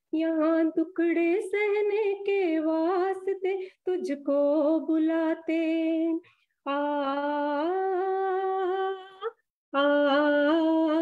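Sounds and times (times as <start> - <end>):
woman singing held vowel: 3.9 - 11.0.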